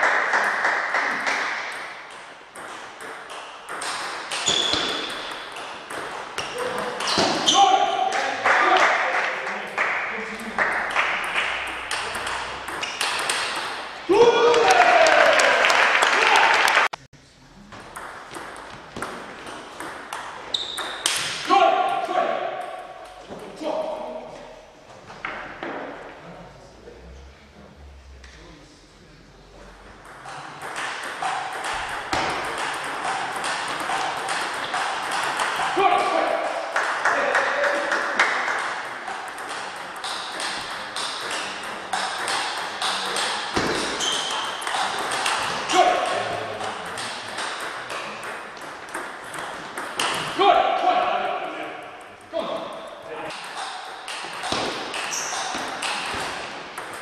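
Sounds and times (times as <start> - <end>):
table tennis balls clicking: 1.3 - 7.4, 10.7 - 14.0, 17.9 - 21.4, 30.0 - 37.0, 38.0 - 50.4, 51.8 - 57.0
player shouting in celebration: 14.1 - 16.7
brief high squeak: 44.0 - 44.4.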